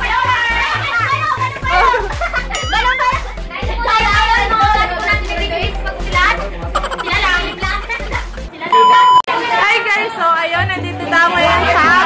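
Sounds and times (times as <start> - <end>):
high test tone beep: 8.7 - 9.3.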